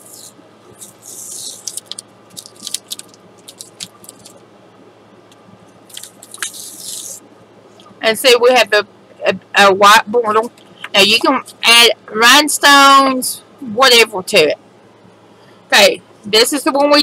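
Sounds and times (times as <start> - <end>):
tape peeling off paper: 0.1 - 4.4, 5.9 - 7.2
crackling clicks of tape: 0.2 - 4.4, 5.3 - 7.2.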